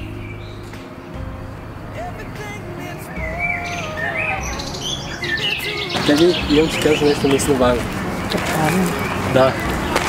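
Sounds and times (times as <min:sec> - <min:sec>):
birds chirping: 0:00.0 - 0:10.0
faint music: 0:00.0 - 0:10.0.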